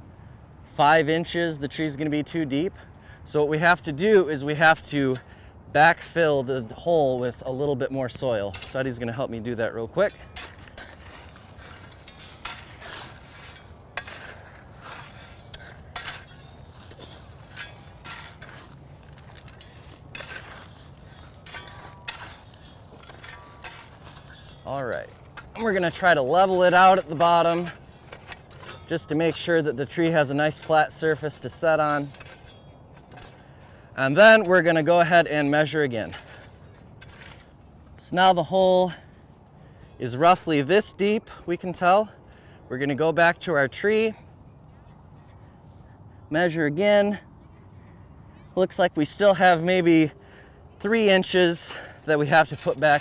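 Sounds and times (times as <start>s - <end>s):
shovel scraping soil: 6.1s - 38.1s, 50.9s - 53.0s.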